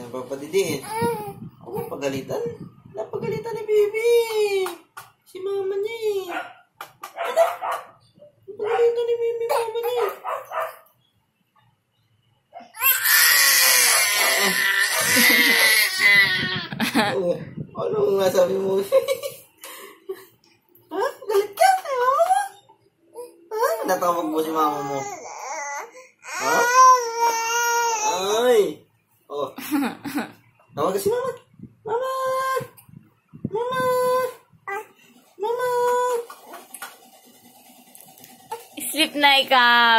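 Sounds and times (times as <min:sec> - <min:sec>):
baby screaming: 0:12.8 - 0:16.7, 0:24.7 - 0:28.3.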